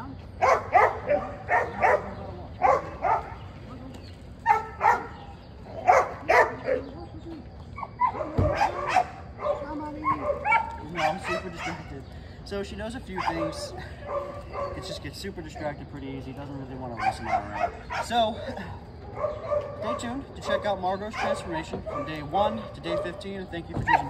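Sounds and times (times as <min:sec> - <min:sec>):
dog barking: 0:00.4 - 0:03.4, 0:04.4 - 0:07.0, 0:07.8 - 0:11.9, 0:13.2 - 0:15.1, 0:16.9 - 0:18.2, 0:19.1 - 0:20.2, 0:21.1 - 0:24.0.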